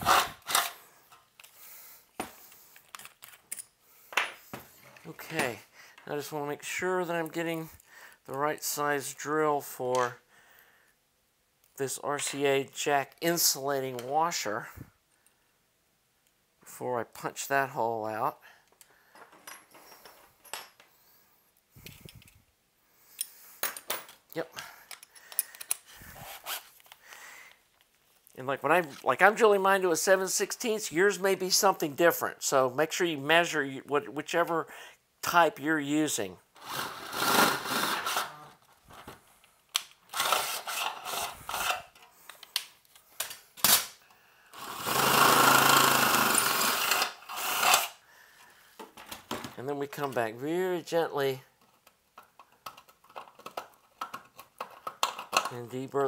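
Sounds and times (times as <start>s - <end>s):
cordless drill boring through metal: 36.6s - 38.3s, 40.1s - 41.8s, 44.6s - 48.0s.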